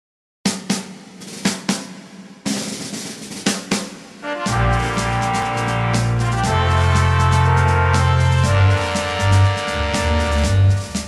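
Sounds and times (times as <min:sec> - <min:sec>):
drum kit hits: 0:00.5 - 0:11.0.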